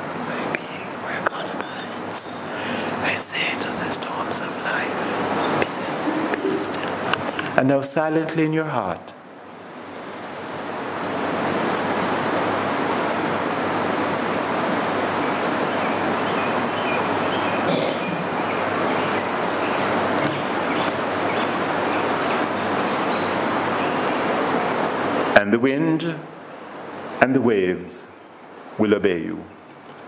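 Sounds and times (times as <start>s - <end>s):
heavy rain rushing: 0.0s - 7.7s, 9.2s - 25.4s.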